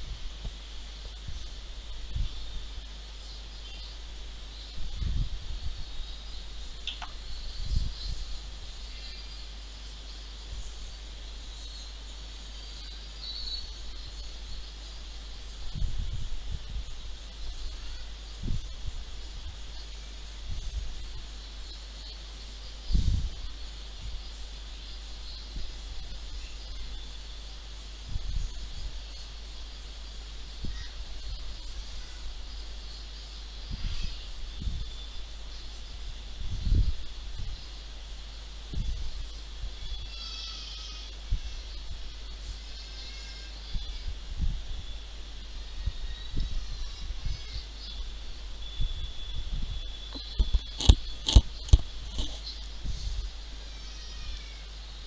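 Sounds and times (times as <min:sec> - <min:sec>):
faint high-pitched hiss: 0:00.0 - 0:55.0
low hum: 0:43.6 - 0:53.7.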